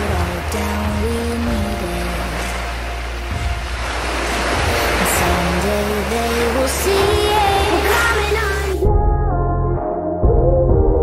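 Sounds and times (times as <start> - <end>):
surf washing onto shore: 0.0 - 8.8
music with low bass and melody: 0.0 - 11.0.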